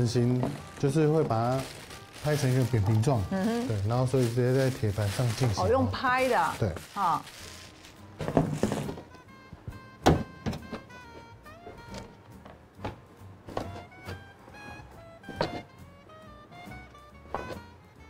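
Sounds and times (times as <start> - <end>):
light background music: 0.0 - 18.0.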